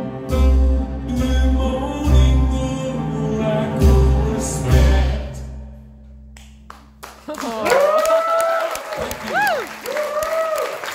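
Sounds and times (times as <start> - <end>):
audience applauding: 6.7 - 10.9
crowd whooping: 7.4 - 10.9.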